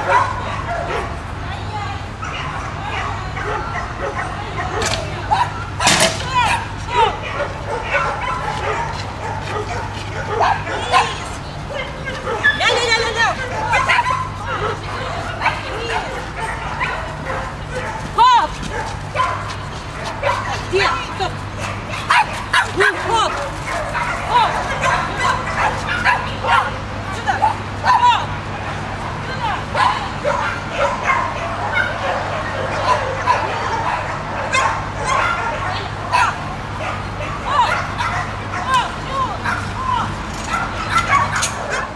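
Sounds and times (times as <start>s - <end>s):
dogs barking and yipping: 0.0s - 41.9s
voices talking: 0.0s - 41.9s.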